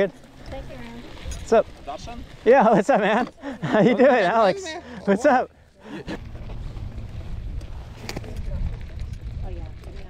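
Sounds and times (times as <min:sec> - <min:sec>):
bike tyres on dirt trail: 0:00.0 - 0:10.0
wind rumble on microphone: 0:06.1 - 0:10.0.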